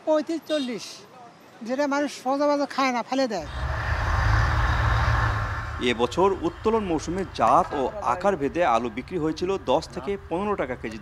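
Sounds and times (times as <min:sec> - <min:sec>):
man speaking: 0:05.8 - 0:11.0.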